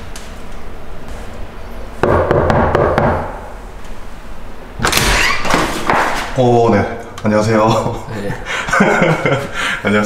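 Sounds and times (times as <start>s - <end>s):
knocking on door: 2.0s - 3.4s
door unlocking and opening: 4.8s - 5.7s.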